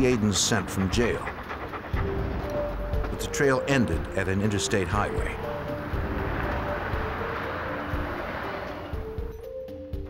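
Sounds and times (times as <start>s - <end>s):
dog panting: 0.0s - 7.5s
faint background music: 0.0s - 10.0s.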